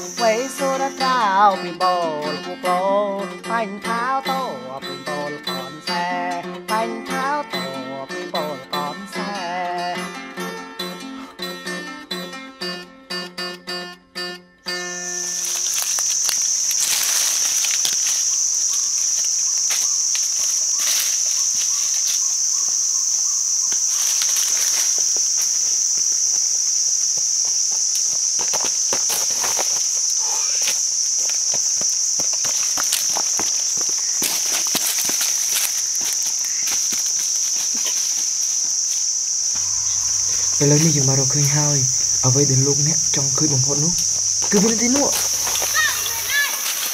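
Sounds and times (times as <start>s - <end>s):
high-pitched insect drone: 0.0s - 46.9s
footsteps on leafy trail: 14.9s - 46.9s.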